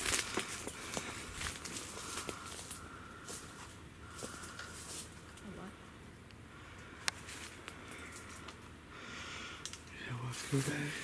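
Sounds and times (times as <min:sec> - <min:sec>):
footsteps through leaf litter: 0:00.0 - 0:03.4.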